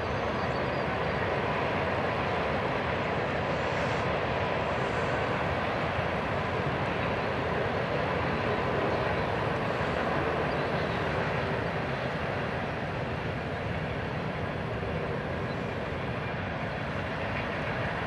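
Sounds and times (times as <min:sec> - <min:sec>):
paraglider engine and propeller drone: 0:00.0 - 0:18.0.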